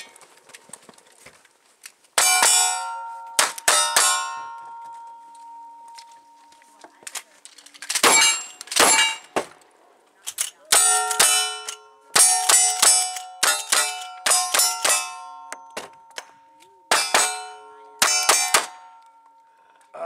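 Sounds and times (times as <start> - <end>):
steel targets ringing: 2.2 - 6.5, 8.0 - 9.4, 10.7 - 19.4
gunshots: 8.0 - 9.6, 16.9 - 18.9.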